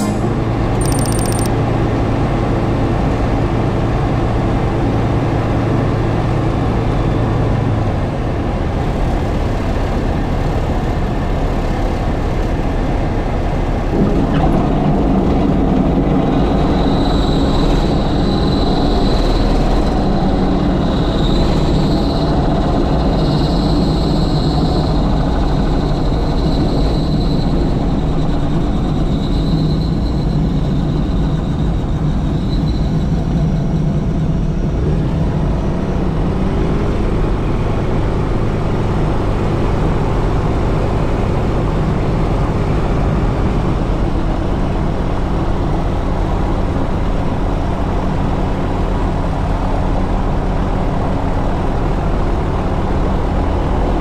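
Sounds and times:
light aircraft engine and propeller: 0:00.0 - 0:54.0.

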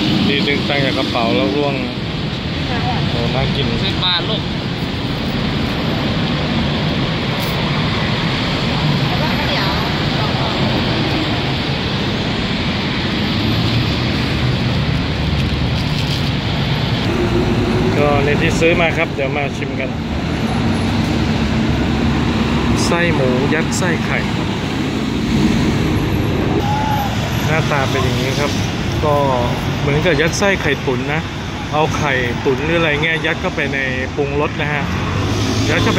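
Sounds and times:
passing traffic rumble: 0:00.0 - 0:35.9.

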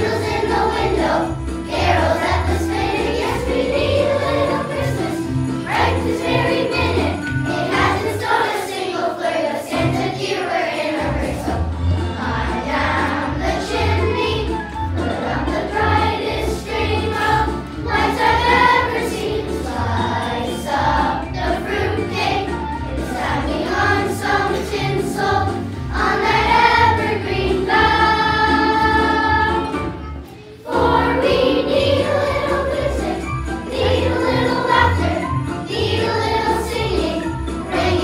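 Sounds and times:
children's choir singing: 0:00.0 - 0:38.0.

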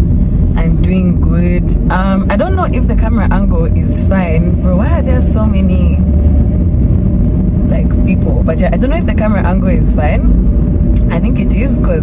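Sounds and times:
car cabin rumble: 0:00.0 - 0:12.0
woman talking: 0:00.6 - 0:06.0, 0:07.7 - 0:10.3, 0:11.0 - 0:12.0.

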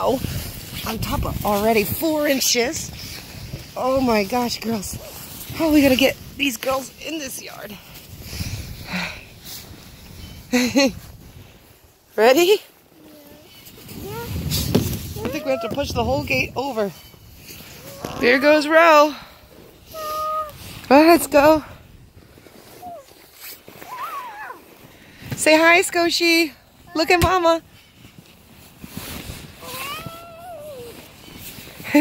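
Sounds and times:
snowsuits rustling in snow: 0:00.0 - 0:32.0
child's high-pitched vocal sound: 0:13.0 - 0:14.4, 0:19.9 - 0:20.6, 0:29.6 - 0:31.0.

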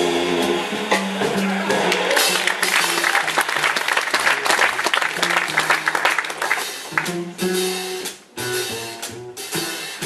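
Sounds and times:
live jazz band: 0:00.0 - 0:10.0
upright bass notes: 0:00.0 - 0:10.0
audience clapping: 0:01.7 - 0:07.3.

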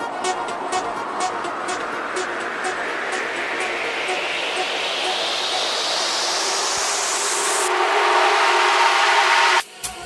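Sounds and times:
held synth tones: 0:00.0 - 0:09.6
white-noise sweep rising: 0:00.0 - 0:10.0.

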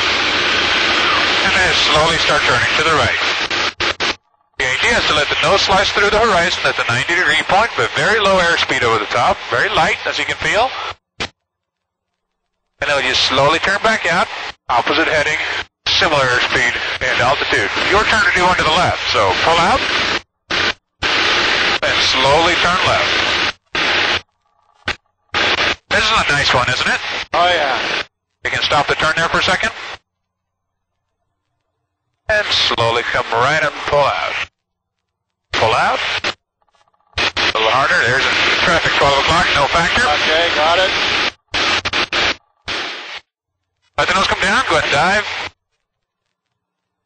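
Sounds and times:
hissing cockpit noise over intercom: 0:00.0 - 0:11.0, 0:12.8 - 0:30.0, 0:32.2 - 0:34.5, 0:35.4 - 0:36.4, 0:37.2 - 0:43.2, 0:44.0 - 0:45.6.

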